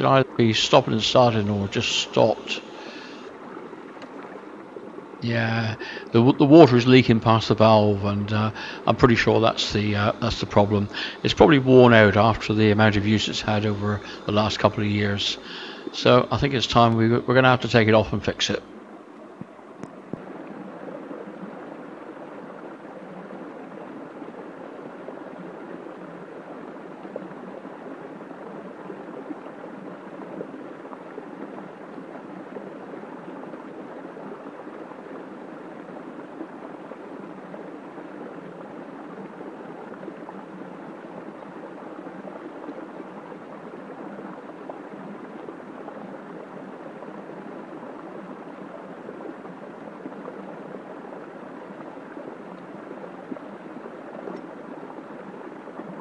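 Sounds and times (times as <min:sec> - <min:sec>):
stream water rushing: 0:00.0 - 0:56.0.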